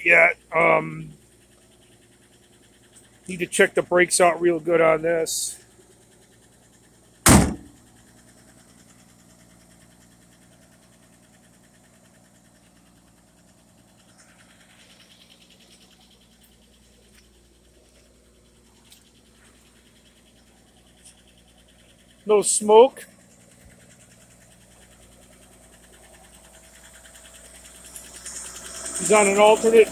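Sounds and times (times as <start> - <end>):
car engine idling hum: 0.0 - 29.9
car door slamming: 7.2 - 7.8.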